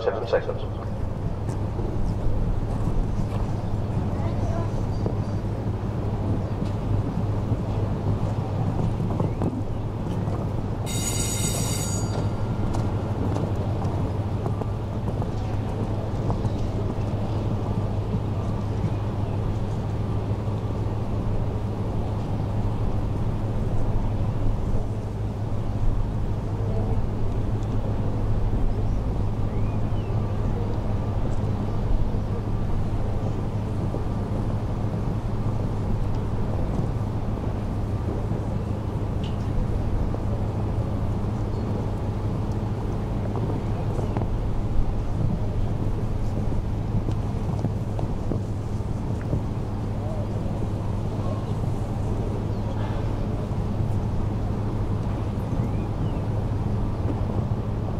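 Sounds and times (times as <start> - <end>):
constant low hum: 0.0 - 57.9
high ringing tone: 10.9 - 13.3.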